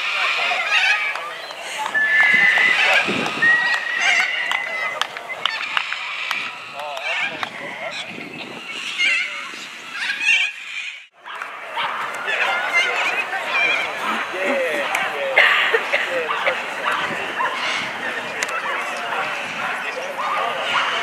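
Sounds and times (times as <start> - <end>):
crowd talking and calling out: 0.0 - 21.0
steady high tone: 1.6 - 10.1.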